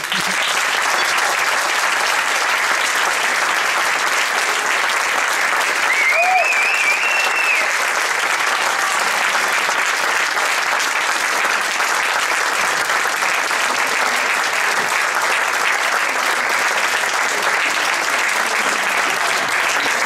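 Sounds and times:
audience applauding: 0.0s - 20.0s.

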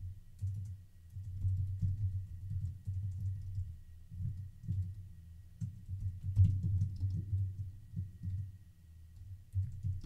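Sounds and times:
typing on computer keyboard: 0.4s - 5.0s, 5.6s - 8.5s, 9.5s - 10.0s.

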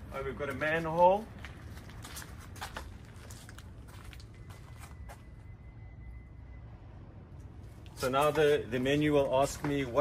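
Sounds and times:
low outdoor hum: 0.0s - 10.0s
footsteps on brick paving: 0.2s - 5.3s, 7.9s - 10.0s.

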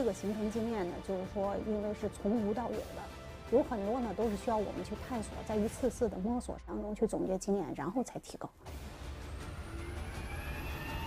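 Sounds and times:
jet engines spooling up: 8.8s - 11.0s.

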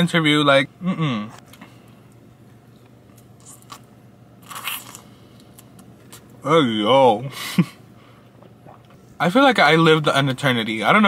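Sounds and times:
chewing crunches: 3.1s - 6.4s.

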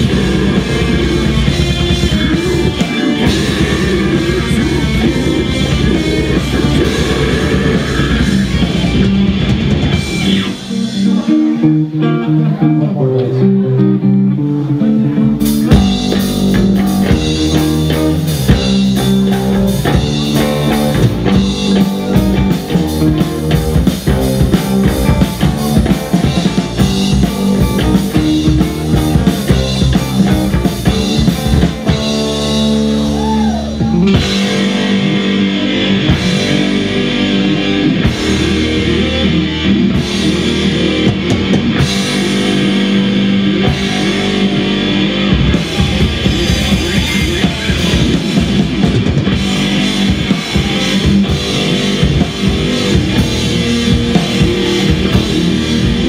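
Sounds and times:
drum kit: 0.0s - 12.8s, 13.8s - 56.0s
bass guitar: 0.0s - 56.0s
distorted electric guitars: 0.0s - 56.0s.

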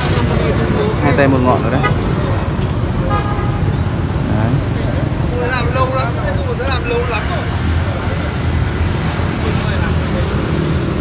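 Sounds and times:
street traffic rumble: 0.0s - 11.0s
vehicle horn toot: 3.0s - 3.7s.

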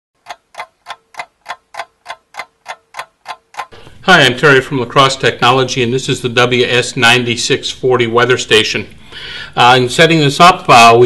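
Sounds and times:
clock ticking: 0.2s - 3.8s.

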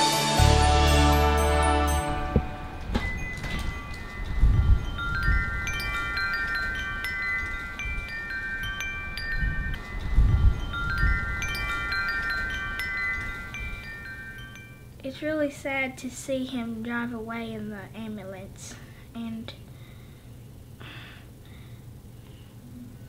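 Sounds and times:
wind chimes ringing: 0.0s - 15.0s
wind rumble on microphone: 2.1s - 13.9s.

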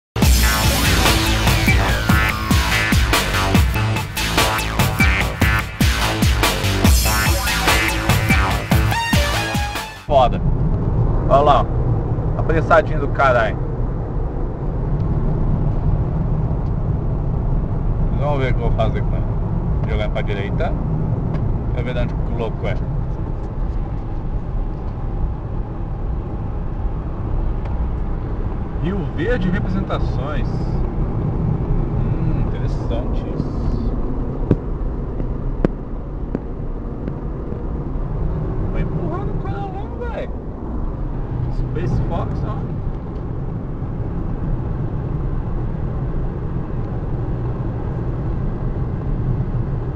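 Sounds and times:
car cabin road and engine rumble: 10.1s - 49.9s.

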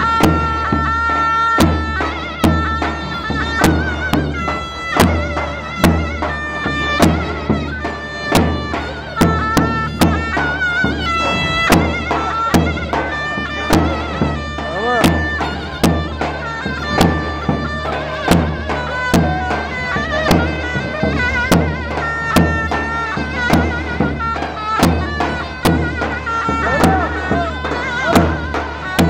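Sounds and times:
heavy drum beats: 0.0s - 29.0s
shrill reed pipe melody: 0.0s - 29.0s.

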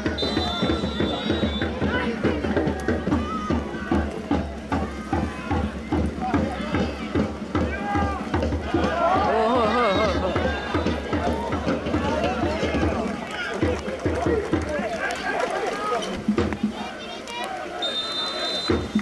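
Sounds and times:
players shouting: 0.0s - 19.0s.

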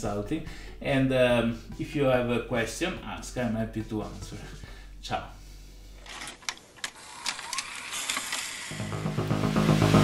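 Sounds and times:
sharp mechanical clicks: 6.1s - 8.8s
tape hiss: 8.7s - 10.0s.

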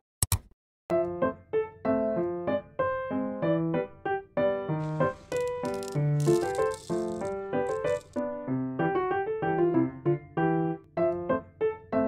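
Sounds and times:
soft piano music: 0.9s - 6.4s, 8.3s - 12.0s
beads rattling into plastic container: 4.8s - 8.2s.

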